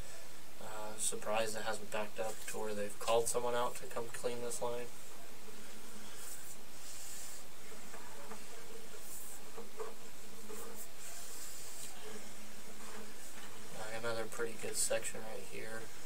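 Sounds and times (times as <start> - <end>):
faint low hum: 0.0 - 16.0
steady hiss: 0.0 - 16.0.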